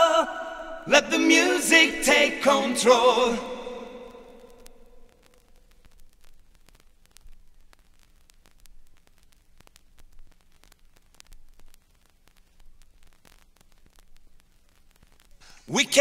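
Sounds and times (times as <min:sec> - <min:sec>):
vinyl record crackle and pops: 0:00.0 - 0:16.0.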